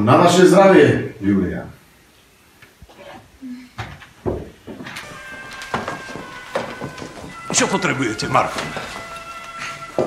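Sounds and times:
wine glasses clinking: 5.0 - 10.0.

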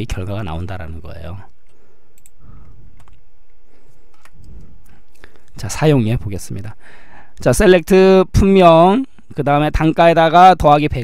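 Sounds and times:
person speaking: 0.0 - 1.7, 5.2 - 11.0
keyboard and mouse clicks: 1.6 - 4.7.

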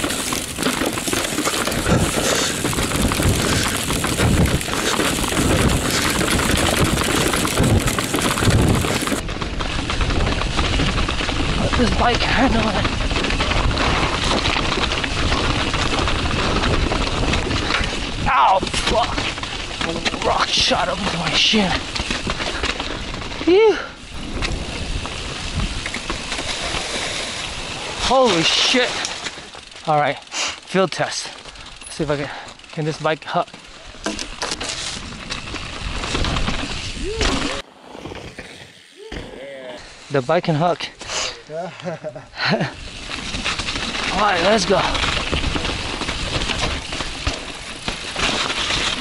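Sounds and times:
wind rumble: 0.0 - 20.2, 21.9 - 28.1, 33.9 - 40.2
mountain bike rattling over rocks: 0.0 - 41.1, 42.0 - 49.0
wind on microphone: 1.7 - 9.2, 35.8 - 40.0
person exclaiming: 23.4 - 24.0, 37.0 - 37.7, 38.8 - 40.1.

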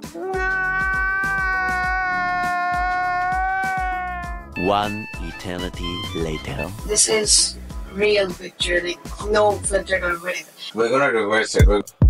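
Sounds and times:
man wailing: 0.3 - 4.6
music with low beat: 2.9 - 10.1, 11.6 - 12.0.

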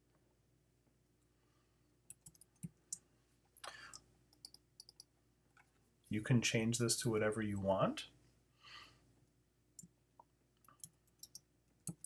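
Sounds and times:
keyboard and mouse clicks: 2.1 - 3.0, 3.6 - 5.1, 9.8 - 12.0.

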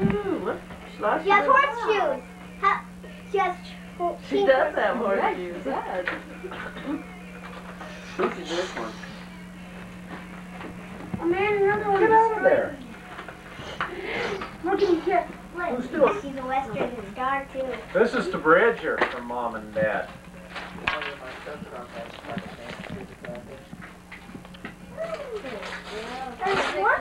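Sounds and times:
low hum: 0.0 - 26.8.

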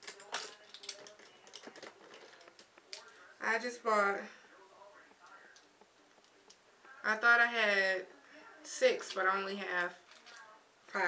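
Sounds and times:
small objects clicking and tapping: 0.0 - 3.2.

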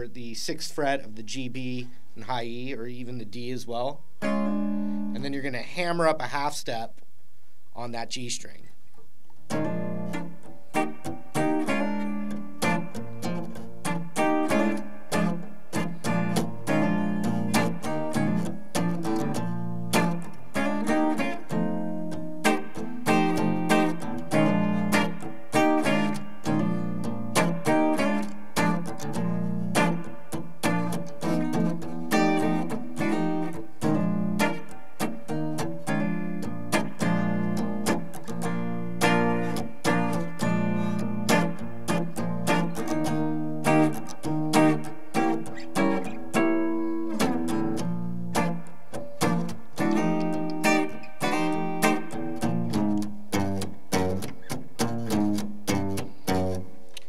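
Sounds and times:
clean electric guitar chords: 4.2 - 5.5, 9.5 - 57.0.

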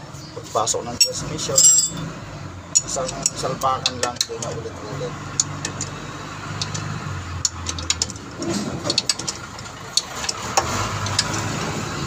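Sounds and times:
engine idling: 1.0 - 12.0
wrench clicking on bolts: 6.6 - 8.3.

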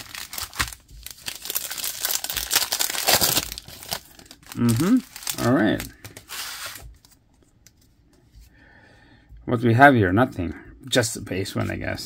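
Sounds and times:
trading cards sliding and rustling: 6.0 - 7.2.

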